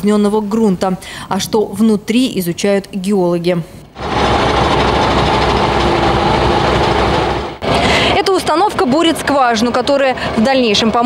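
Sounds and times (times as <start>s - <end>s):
drilling rig auger boring: 4.0s - 8.0s.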